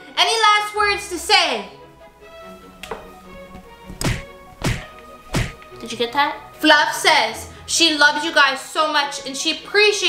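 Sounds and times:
background music: 0:00.0 - 0:10.0
plush toy thumping microphone: 0:03.9 - 0:05.6.

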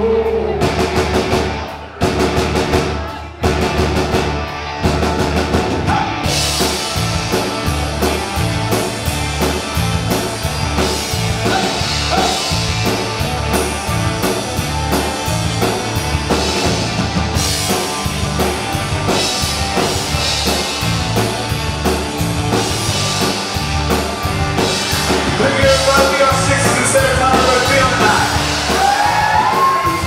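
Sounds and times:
rock band playing: 0:00.0 - 0:30.0
driving drum beat: 0:00.4 - 0:30.0.

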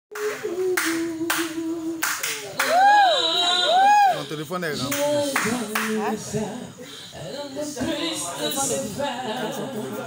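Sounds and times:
audience clapping: 0:00.1 - 0:03.0.

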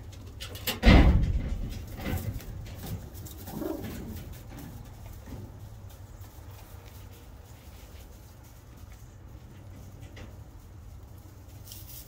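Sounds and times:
pigeon low coo: 0:03.5 - 0:04.2.

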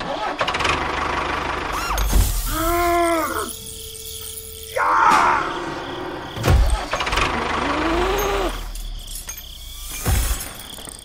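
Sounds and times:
tractor engine running unevenly: 0:00.0 - 0:02.5.

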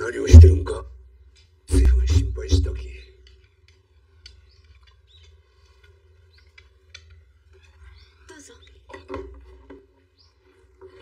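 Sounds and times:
low steady hum: 0:00.0 - 0:01.1, 0:01.7 - 0:03.1
faint high bird-like chirps: 0:07.2 - 0:09.0.

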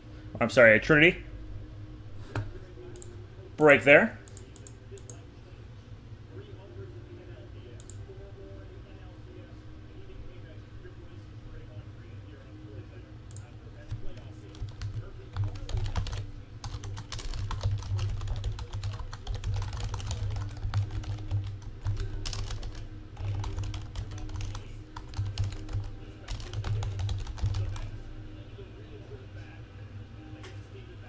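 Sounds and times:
low hum: 0:00.0 - 0:03.6
typing on keyboard: 0:13.3 - 0:27.9.

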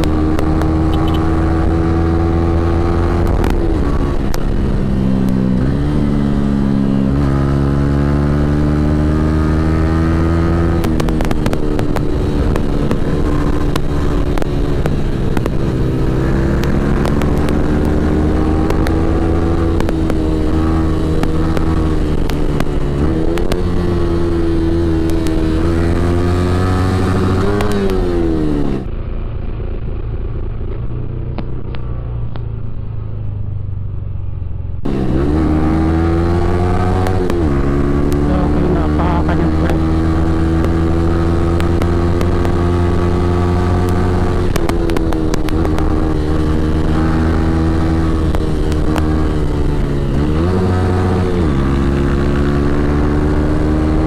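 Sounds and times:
wind rush: 0:00.0 - 0:32.8
motorcycle engine revving: 0:00.0 - 0:54.0.

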